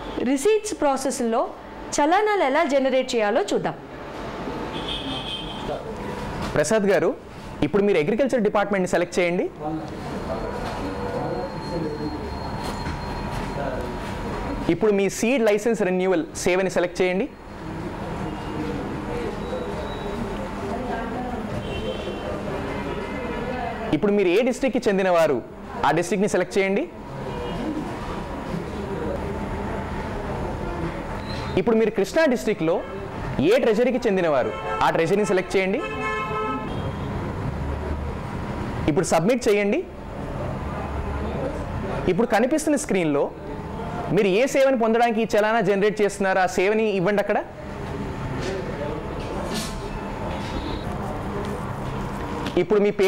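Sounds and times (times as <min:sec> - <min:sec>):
faint voices: 0:17.5 - 0:24.0, 0:47.5 - 0:52.6
horn-like held tone: 0:49.8 - 0:51.0.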